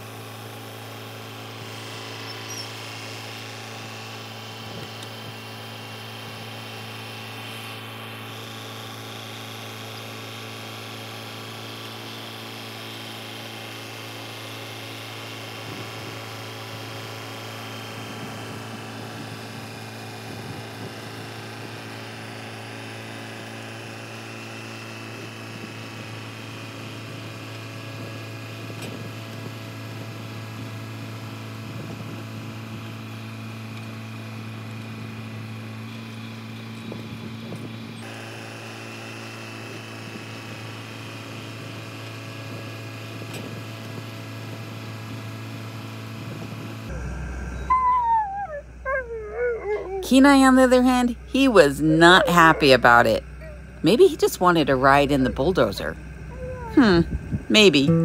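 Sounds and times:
bulldozer diesel engine running: 0:00.0 - 0:58.0.

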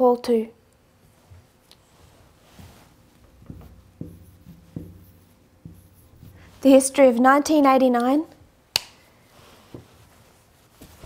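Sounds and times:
marker writing on whiteboard: 0:02.6 - 0:07.1.

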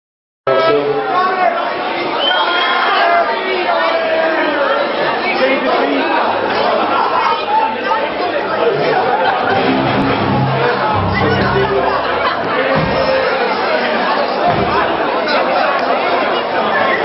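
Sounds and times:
crowd chatter: 0:00.5 - 0:17.0
low bass notes: 0:09.4 - 0:13.1.

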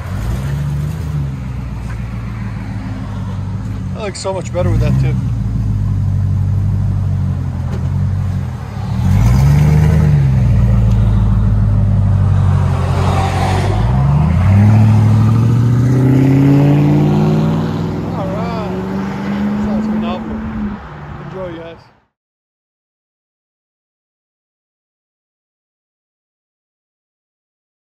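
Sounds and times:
car engine idling and revving: 0:00.0 - 0:22.0.

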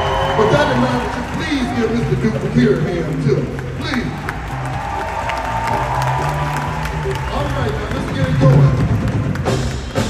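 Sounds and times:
audience applauding: 0:00.0 - 0:10.0
live band playing softly: 0:00.0 - 0:10.0.

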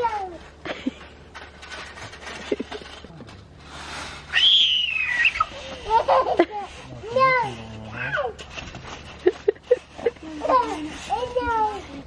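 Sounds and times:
toddler squealing: 0:04.3 - 0:05.6.

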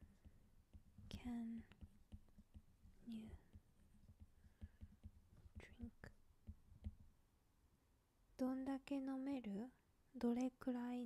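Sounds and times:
stylus tapping on glass screen: 0:00.1 - 0:07.2
whispered words: 0:01.1 - 0:01.7, 0:05.6 - 0:06.1.

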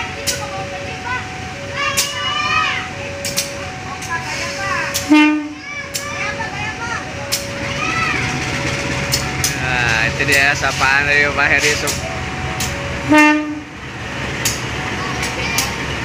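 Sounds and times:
people calling out: 0:00.0 - 0:12.8
locomotive engine rumble: 0:00.0 - 0:16.0
locomotive horn toot: 0:04.2 - 0:05.6, 0:13.0 - 0:13.7.

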